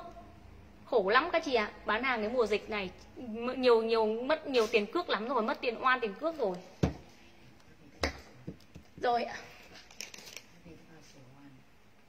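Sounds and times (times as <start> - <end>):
plastic wrapping rustling: 9.5 - 10.6.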